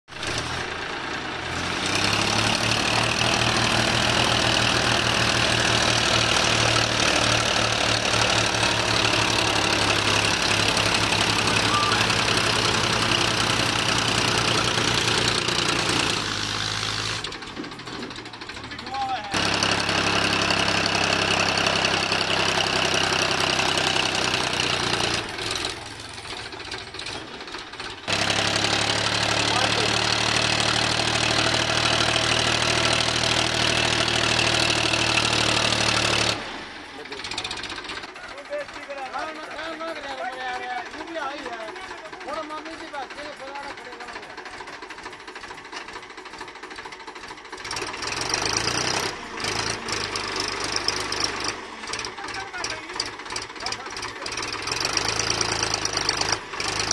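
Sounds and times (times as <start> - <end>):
tractor engine under load: 0.1 - 56.9.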